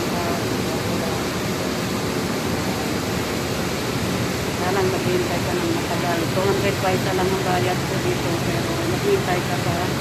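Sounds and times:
woman speaking: 0:04.6 - 0:10.0.

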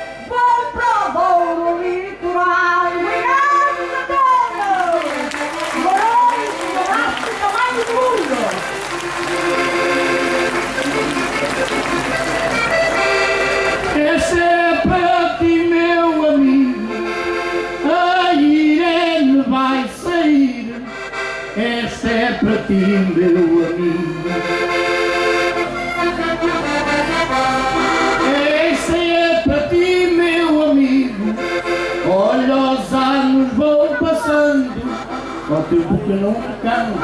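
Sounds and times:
button accordion playing folk tune: 0:00.0 - 0:37.0.

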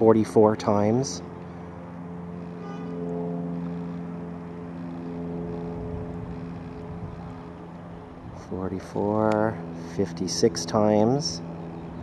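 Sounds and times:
motor humming: 0:01.2 - 0:12.0.

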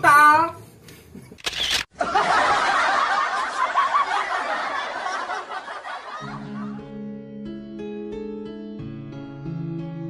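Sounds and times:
camera shutter: 0:01.4 - 0:01.9
canned laughter: 0:02.0 - 0:06.8.

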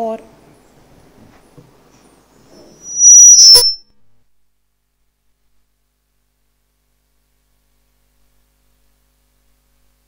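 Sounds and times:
microphone feedback squeal: 0:02.5 - 0:03.9.

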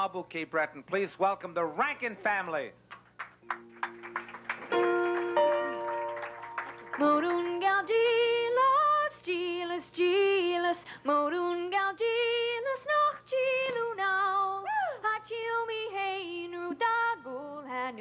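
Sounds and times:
scattered clapping: 0:02.9 - 0:07.7
women singing in harmony: 0:07.0 - 0:18.0.

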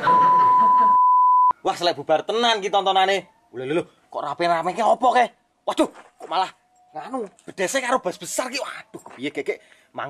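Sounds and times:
high beep: 0:00.0 - 0:01.6.

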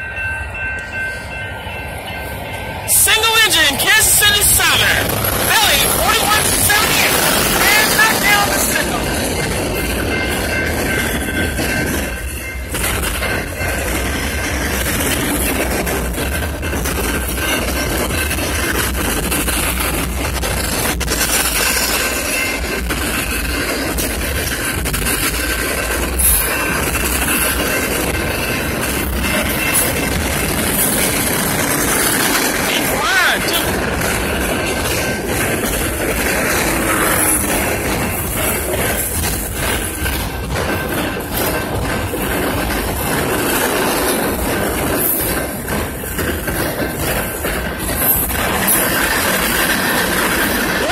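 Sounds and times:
crossing warning bell ringing: 0:00.0 - 0:50.9
train wheels rumbling on rails: 0:00.0 - 0:50.9.

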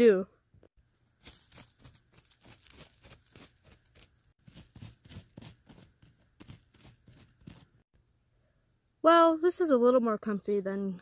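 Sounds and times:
toy scraping through gravelly soil: 0:01.2 - 0:07.8.

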